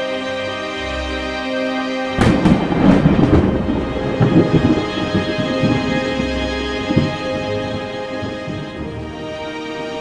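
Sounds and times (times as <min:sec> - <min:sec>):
theme music: 0:00.0 - 0:10.0
low rolling thunder rumble: 0:02.2 - 0:10.0
thunderclap with crackles: 0:02.2 - 0:10.0.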